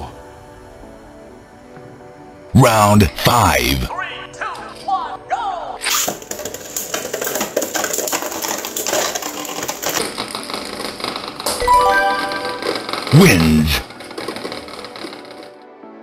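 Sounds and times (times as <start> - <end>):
edited-in music: 0.0 - 8.8, 9.9 - 16.0
spinning tops whirring and clattering: 5.8 - 15.6
chime-like tone: 11.6 - 12.8.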